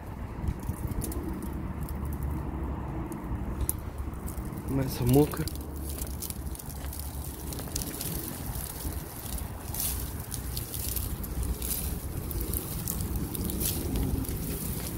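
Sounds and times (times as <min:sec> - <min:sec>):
wind rumbling on microphone: 0:00.0 - 0:14.9
ice crackling on pine needles: 0:00.4 - 0:14.9.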